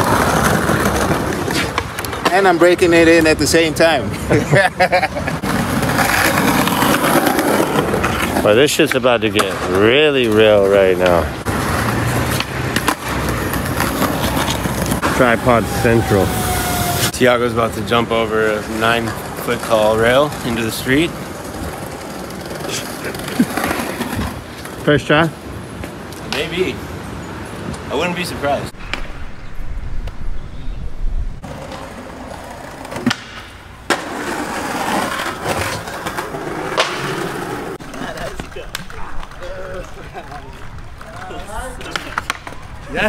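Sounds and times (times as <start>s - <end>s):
skateboard wheels rolling on tiles: 0.0s - 3.9s, 4.5s - 15.3s, 17.5s - 26.6s, 31.4s - 43.0s
street ambience: 0.0s - 43.0s.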